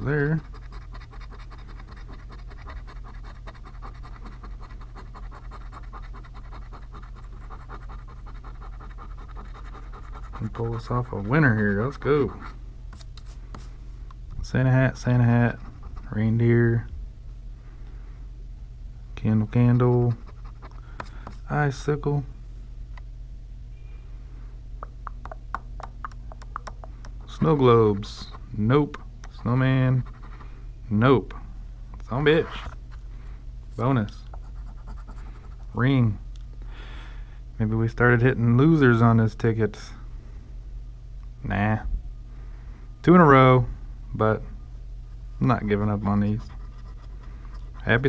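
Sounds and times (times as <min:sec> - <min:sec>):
coin scratching lottery ticket: 0:00.0 - 0:12.4.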